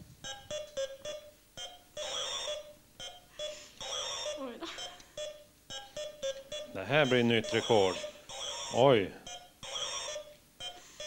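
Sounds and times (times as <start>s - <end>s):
warbling electronic tones: 0.2s - 10.8s
short electronic blips: 0.2s - 11.0s.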